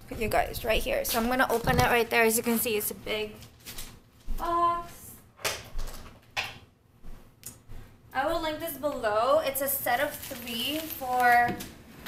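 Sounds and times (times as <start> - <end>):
household handling sounds: 9.9 - 12.0.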